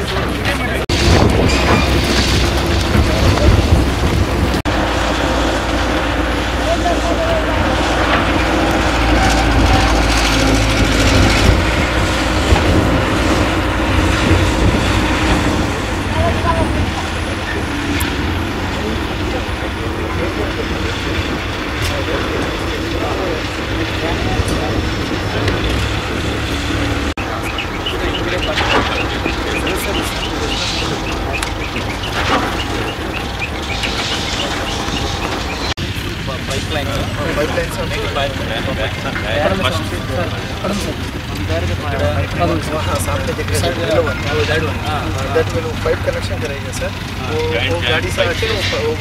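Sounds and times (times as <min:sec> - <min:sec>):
diesel truck engine rumbling: 0:00.0 - 0:49.0
indistinct voices: 0:00.0 - 0:49.0.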